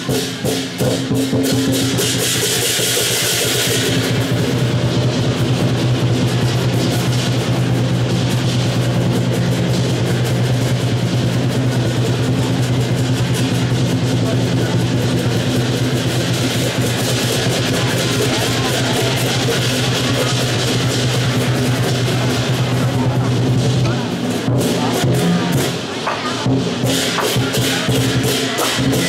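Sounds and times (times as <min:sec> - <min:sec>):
cymbals clashing: 0:00.0 - 0:29.0
large drum beaten fast: 0:00.0 - 0:29.0.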